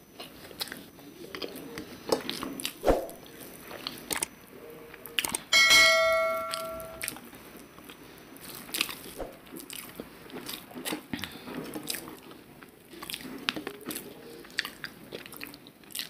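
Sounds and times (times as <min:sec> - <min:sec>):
chewing: 0:00.0 - 0:05.5, 0:07.1 - 0:16.0
bell chime: 0:05.6 - 0:07.1.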